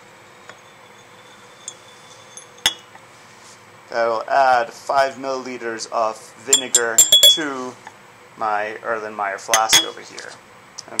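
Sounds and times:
sharp glass clink: 0.6 - 2.9, 6.5 - 7.5, 9.5 - 10.0.

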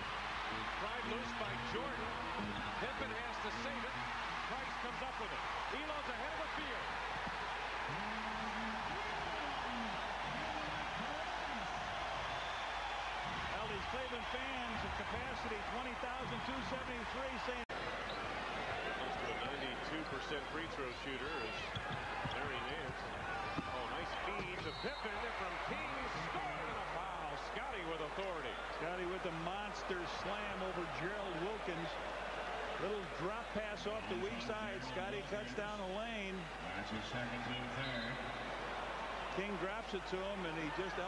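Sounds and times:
crowd cheering and yelling: 0.0 - 41.0.

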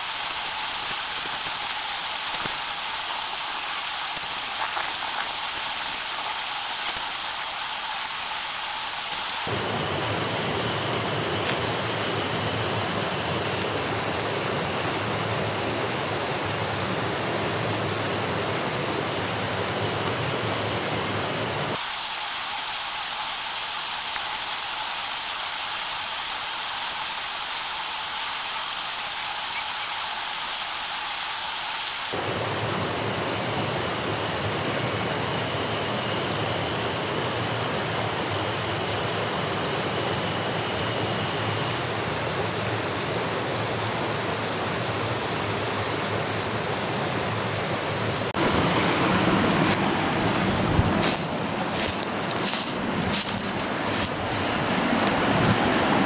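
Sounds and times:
stream running over rocks: 0.0 - 35.5, 36.3 - 56.0.

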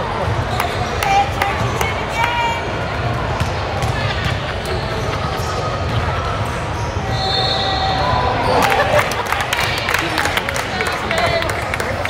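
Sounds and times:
voices talking in echoing hall: 0.0 - 12.0.

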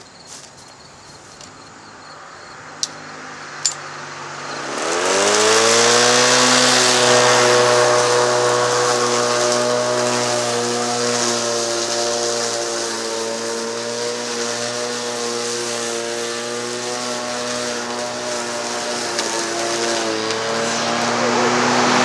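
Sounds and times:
electric lawn mower whirring: 2.6 - 22.0.

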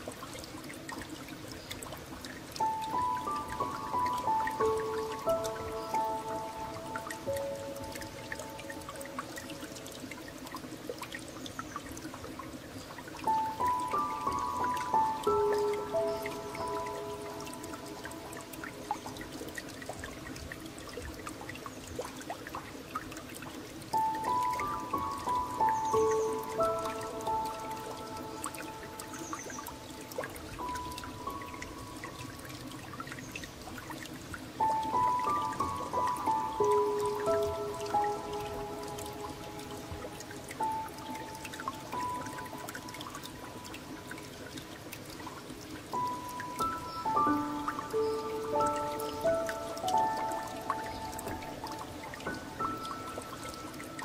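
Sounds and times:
trickling water: 0.0 - 54.0
slow solo piano: 2.6 - 9.4, 23.9 - 31.3, 34.6 - 42.7, 46.0 - 54.0.

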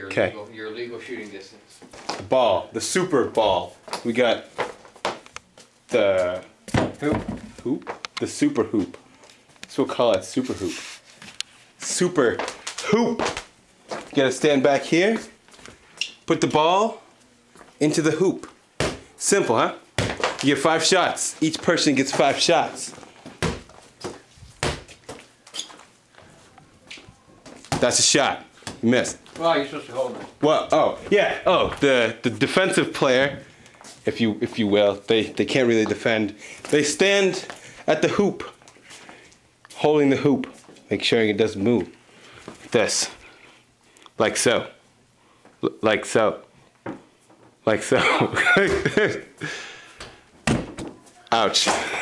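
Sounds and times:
dull thumps and knocks of toys: 6.7 - 8.0, 18.8 - 19.1, 20.0 - 20.5, 23.2 - 25.0, 50.4 - 51.0
laughter: 48.0 - 49.4.

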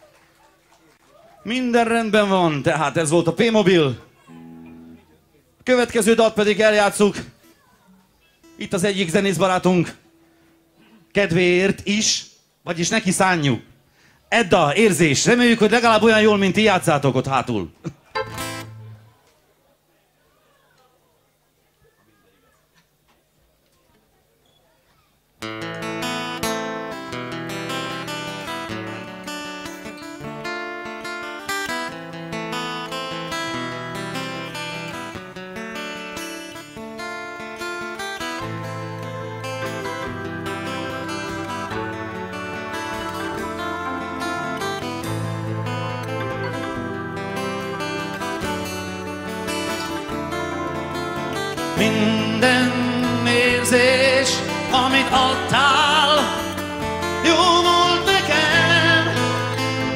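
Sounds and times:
strummed acoustic guitar: 4.1 - 5.2, 18.0 - 19.2, 25.4 - 59.9
electric guitars: 18.0 - 19.2, 25.4 - 59.9
rock band playing: 18.2 - 19.0, 36.3 - 59.9
bass line: 38.4 - 59.9.

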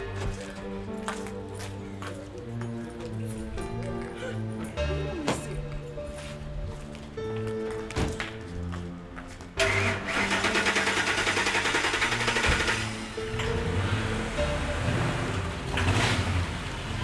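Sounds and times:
background music: 0.0 - 17.0
engine cranking and starting: 9.6 - 17.0.

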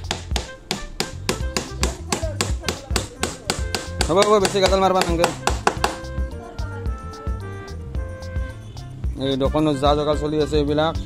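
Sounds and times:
hammer tapping on wood: 0.0 - 6.1
background music with bass beat: 0.0 - 11.0.

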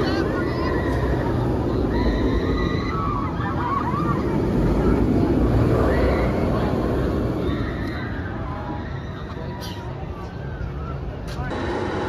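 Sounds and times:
roller coaster train on track: 0.0 - 12.0.

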